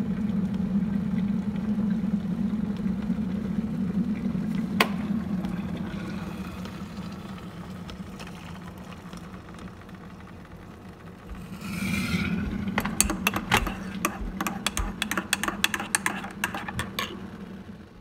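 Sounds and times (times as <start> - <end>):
electric kettle boiling: 0.0 - 18.0
water pouring into a mug: 4.1 - 10.0.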